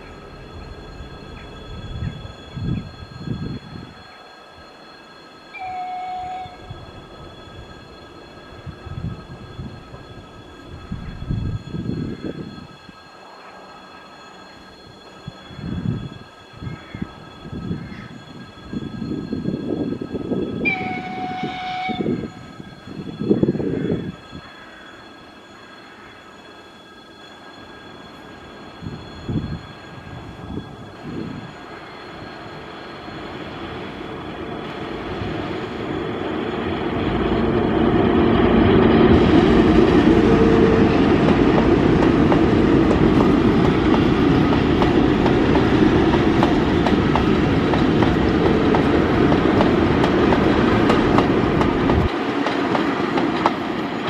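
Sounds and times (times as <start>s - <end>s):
electric locomotives passing: 0.0s - 54.0s
wheel and rail noise: 0.0s - 54.0s.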